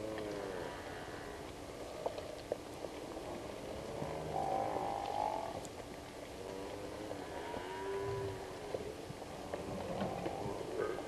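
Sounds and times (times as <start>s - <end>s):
buffalo lowing: 3.8s - 5.6s, 6.4s - 11.0s.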